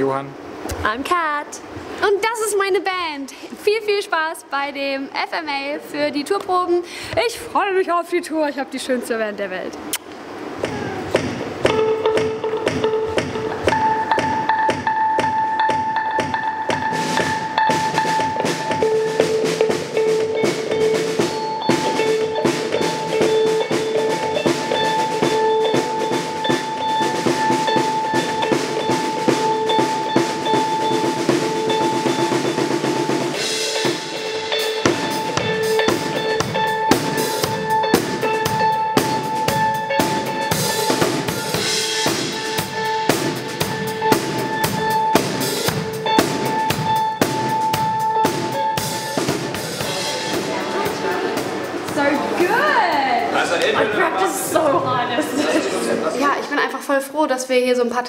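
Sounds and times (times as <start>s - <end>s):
band music: 9.8s - 56.6s
drum kit beat: 9.9s - 56.6s.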